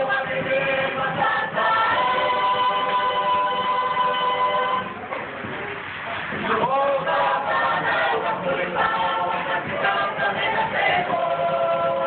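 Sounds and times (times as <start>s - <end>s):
choir singing in harmony: 0.0s - 5.0s, 6.4s - 12.0s.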